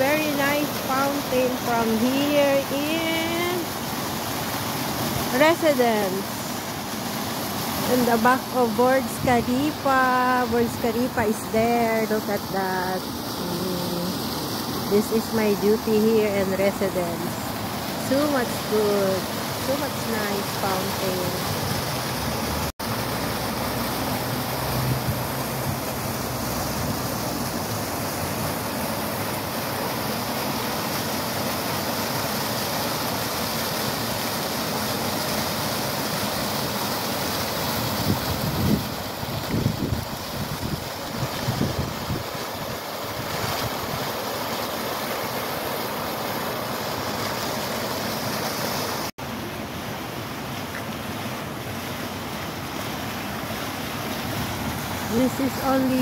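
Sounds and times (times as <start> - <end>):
fountain water splashing: 0.0 - 56.0.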